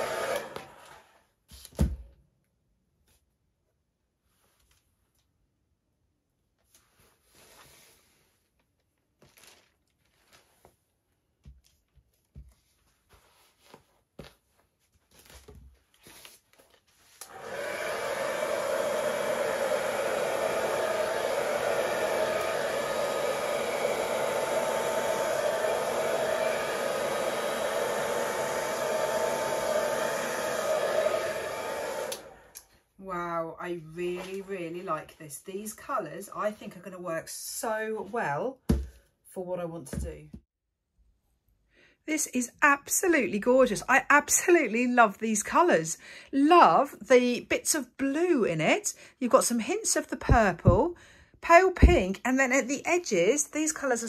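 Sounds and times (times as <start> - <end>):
hair dryer running: 0.0 - 1.2, 17.2 - 32.7.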